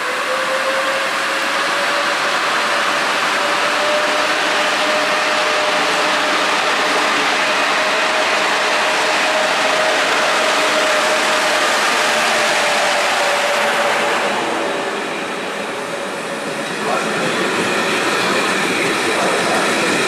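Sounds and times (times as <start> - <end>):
electric locomotive whine: 0.0 - 20.0
train wheels on rails: 0.0 - 20.0.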